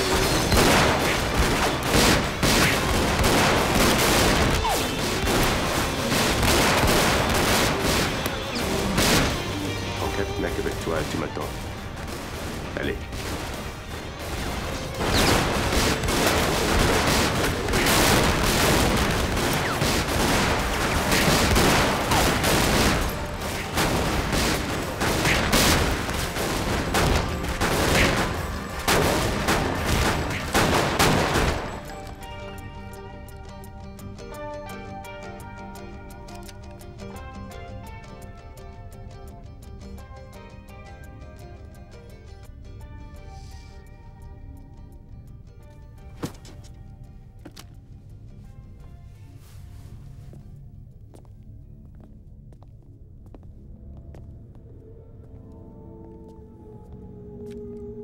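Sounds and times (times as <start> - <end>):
rapid pistol shots: 0.0 - 9.9, 10.5 - 32.2.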